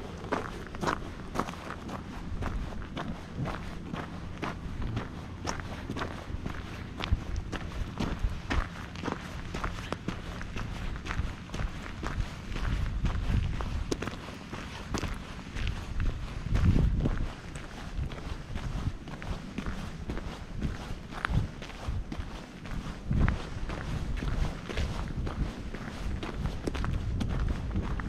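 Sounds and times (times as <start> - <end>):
footsteps crunching on gravel: 0.0 - 28.0
low rumble: 0.0 - 28.0.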